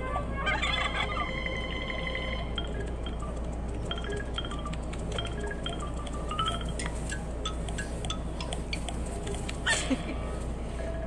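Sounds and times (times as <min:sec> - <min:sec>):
cartoon background music: 0:00.0 - 0:09.7.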